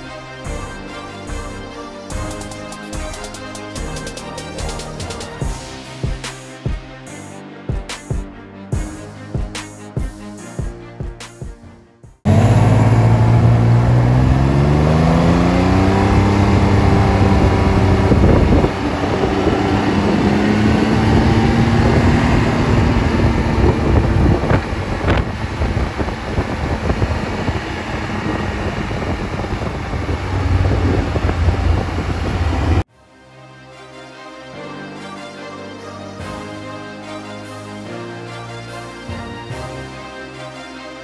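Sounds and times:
motorcycle engine pulling away: 12.3s - 32.9s
road and wind noise: 12.3s - 32.9s.

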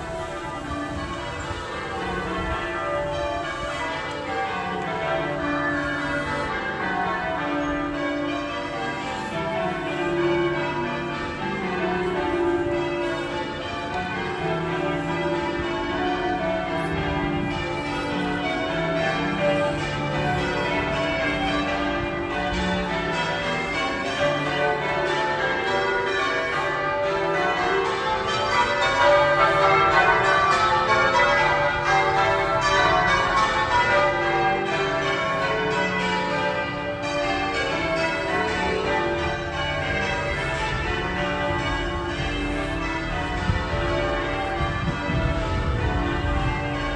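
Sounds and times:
church bells ringing a peal: 0.0s - 46.9s.

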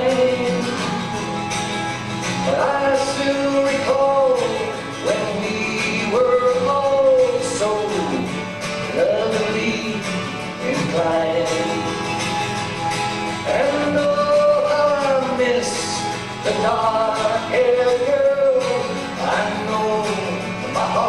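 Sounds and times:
acoustic guitar strumming: 0.0s - 21.0s
man singing folk song: 0.0s - 21.0s.

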